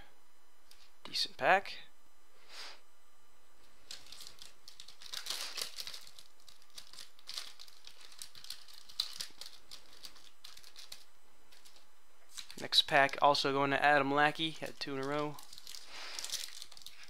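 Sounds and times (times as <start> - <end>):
cards rustling and crinkling: 3.7 - 13.3, 14.4 - 17.0
cards clicking and tapping: 3.9 - 13.2.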